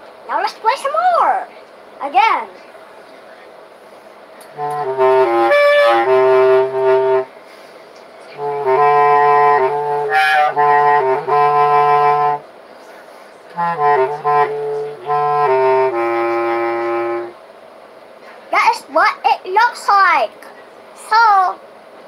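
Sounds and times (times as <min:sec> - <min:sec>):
bass clarinet low notes: 0:04.5 - 0:07.3, 0:08.4 - 0:12.4, 0:13.5 - 0:17.4.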